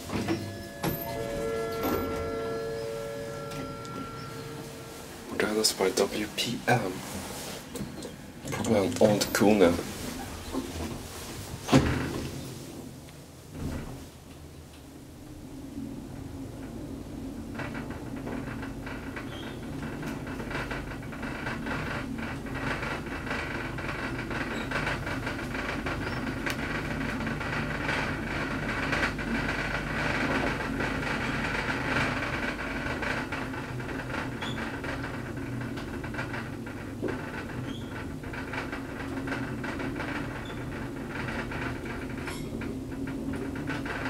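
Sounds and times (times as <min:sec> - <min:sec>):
elevator doors sliding shut: 0:00.0 - 0:14.2
elevator rumble and air rush: 0:00.0 - 0:44.0.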